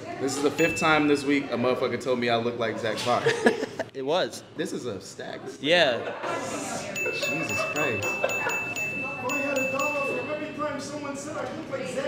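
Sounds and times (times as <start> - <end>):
high chime-like ringing: 0.6 - 1.6, 7.0 - 10.8.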